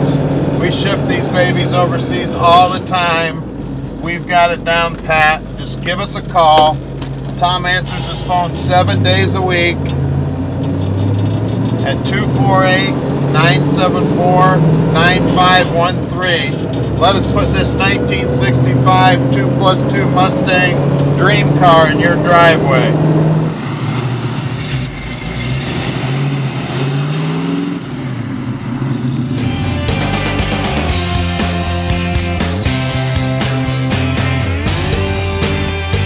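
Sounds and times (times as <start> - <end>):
car engine running from inside: 0.0 - 36.0
rock music: 28.6 - 36.0.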